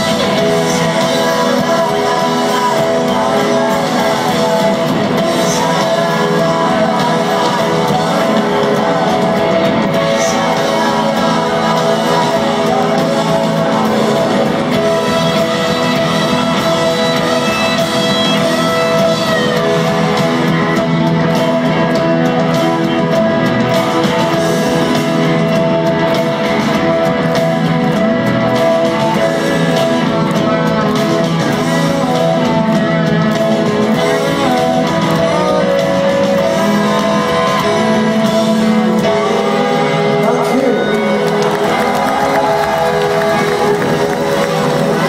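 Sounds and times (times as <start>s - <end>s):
electric guitars: 0.0s - 45.0s
live rock band playing: 0.0s - 45.0s.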